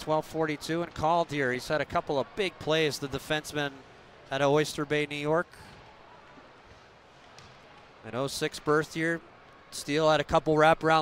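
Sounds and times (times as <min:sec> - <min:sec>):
crowd and rink noise: 0:00.0 - 0:11.0.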